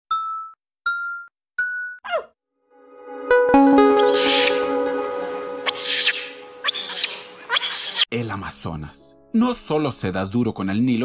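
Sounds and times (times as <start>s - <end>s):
rising bell-like chime dings: 2.8s - 7.4s.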